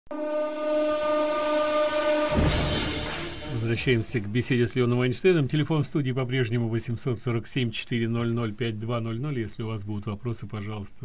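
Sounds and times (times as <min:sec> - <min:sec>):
steady pitched tone: 0:00.1 - 0:04.7.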